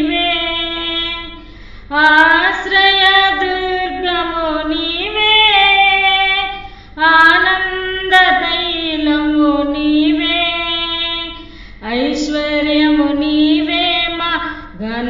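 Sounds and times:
woman singing a hymn solo: 0.0 - 15.0.

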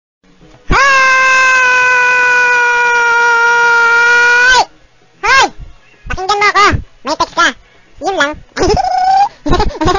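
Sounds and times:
high-pitched voice yelling: 0.7 - 9.9.

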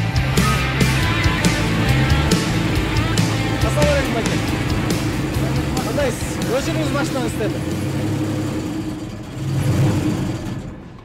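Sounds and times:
mining machine engine revving: 0.0 - 11.0.

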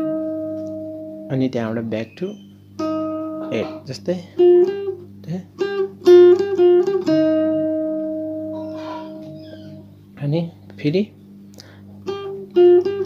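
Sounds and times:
guitar playing slow lead: 0.0 - 13.0.

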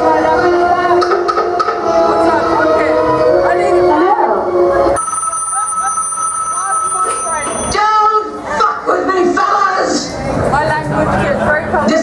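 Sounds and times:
telephone ringing: 5.0 - 7.8.

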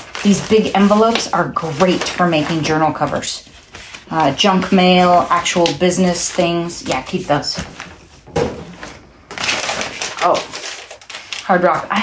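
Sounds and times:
paper rustling: 0.0 - 12.0.

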